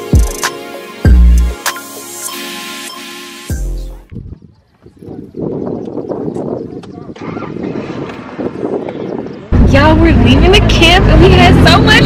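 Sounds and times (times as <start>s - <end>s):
wind: 3.5s - 12.0s
car engine and road rumble: 9.5s - 12.0s.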